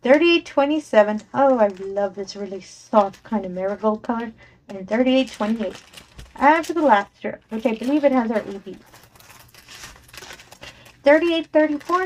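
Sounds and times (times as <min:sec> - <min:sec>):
plastic packets crinkling: 0:01.0 - 0:12.0.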